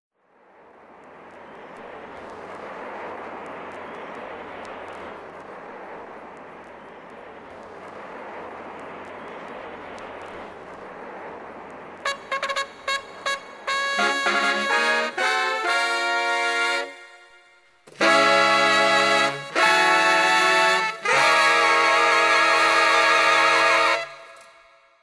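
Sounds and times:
steady rushing noise: 0:00.1 - 0:25.0
faint crackles: 0:00.2 - 0:18.4
brass-like music stabs: 0:12.0 - 0:24.3.

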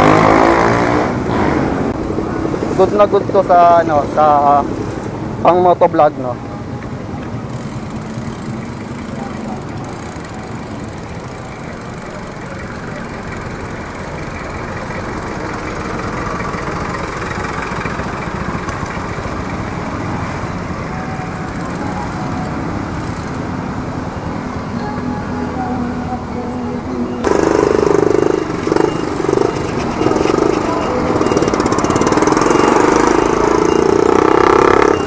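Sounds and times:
road noise: 0:00.0 - 0:35.0
street traffic engines: 0:00.0 - 0:35.0.

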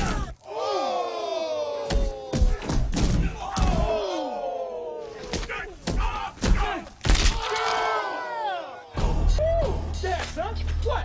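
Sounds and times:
long falling yells: 0:00.0 - 0:05.3, 0:07.4 - 0:09.7.

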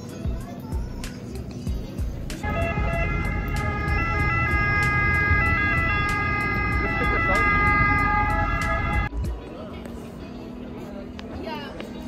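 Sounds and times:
low street rumble: 0:00.0 - 0:12.0
emergency vehicle siren: 0:02.4 - 0:09.1.

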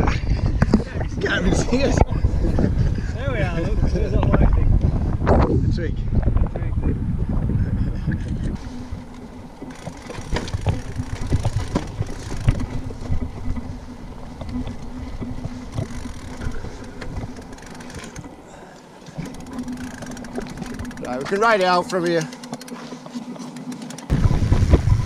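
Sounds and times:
wind rumble on microphone: 0:00.0 - 0:18.3, 0:24.1 - 0:25.0
steady low hum: 0:00.0 - 0:25.0
bike rattling over stones: 0:08.6 - 0:25.0.

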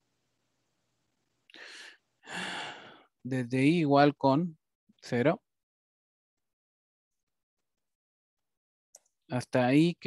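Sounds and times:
person breathing into microphone: 0:01.5 - 0:03.1.

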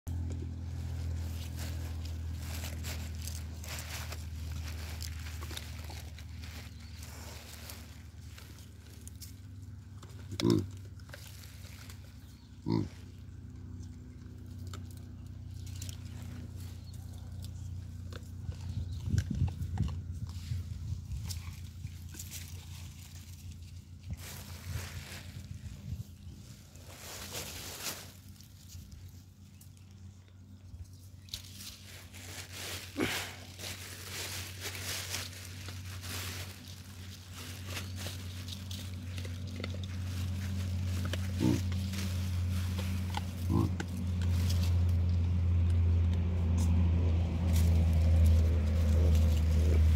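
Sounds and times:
baboon grunting: 0:43.4 - 0:44.0.

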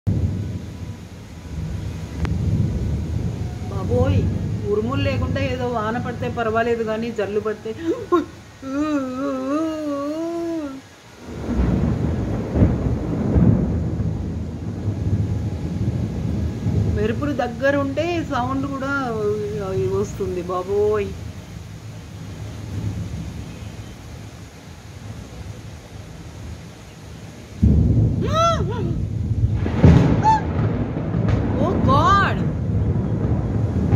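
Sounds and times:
heavy rain: 0:00.0 - 0:33.9
gusty wind buffeting microphone: 0:00.1 - 0:08.6, 0:10.9 - 0:26.6, 0:27.5 - 0:33.9.

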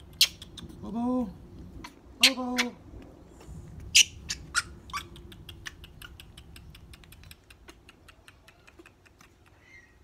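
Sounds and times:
baby monkey squeaking: 0:03.9 - 0:05.2.

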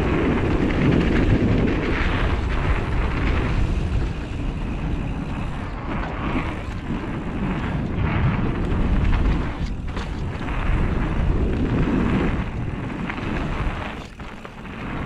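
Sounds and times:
bike tyres rolling on dirt: 0:00.0 - 0:15.0
wind on microphone: 0:00.0 - 0:15.0.

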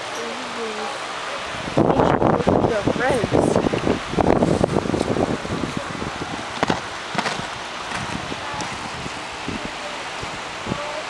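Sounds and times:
rustling handling noise: 0:06.5 - 0:08.2.

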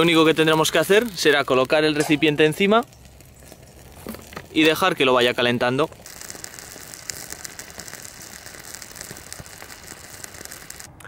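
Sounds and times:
faint hiss: 0:00.0 - 0:11.0
fire crackling in metal stove: 0:00.0 - 0:11.0.

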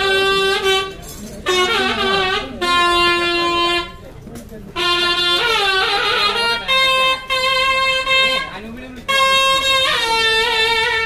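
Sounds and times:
reed wind instrument melody: 0:00.0 - 0:11.0.

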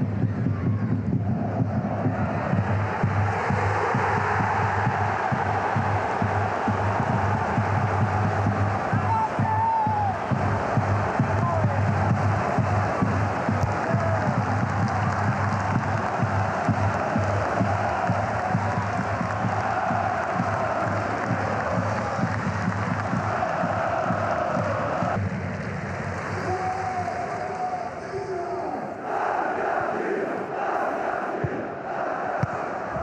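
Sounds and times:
music: 0:00.0 - 0:33.0
stadium crowd cheering and singing: 0:00.0 - 0:33.0
crowd chanting: 0:00.7 - 0:25.2, 0:28.6 - 0:33.0.

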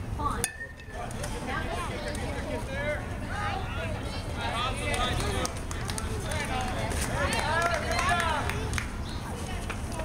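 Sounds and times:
spectators shouting and cheering: 0:06.3 - 0:08.7.

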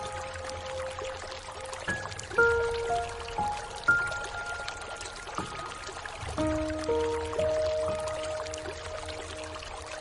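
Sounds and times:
rain hiss: 0:00.0 - 0:10.0
slow piano notes: 0:00.0 - 0:10.0.

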